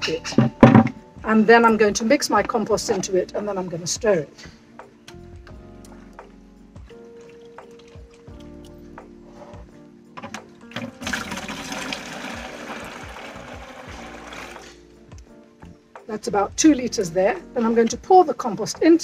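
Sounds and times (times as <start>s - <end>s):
soft background music: 0.0s - 19.0s
small water splashes: 10.7s - 13.7s
water pouring into bucket: 10.7s - 14.8s.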